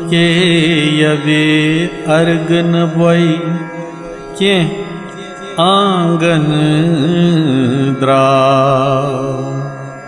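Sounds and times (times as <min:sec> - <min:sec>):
man singing a long note: 0:00.0 - 0:05.0, 0:05.6 - 0:09.8.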